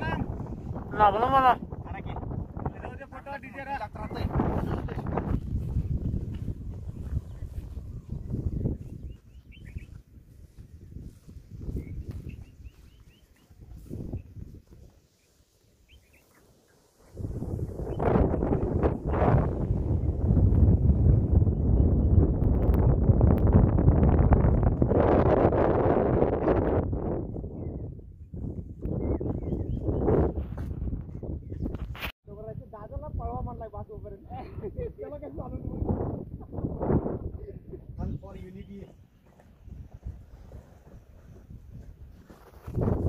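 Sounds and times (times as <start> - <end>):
wind buffeting microphone: 0.0 - 43.0
faint bird chirps: 8.2 - 10.0, 15.2 - 16.9.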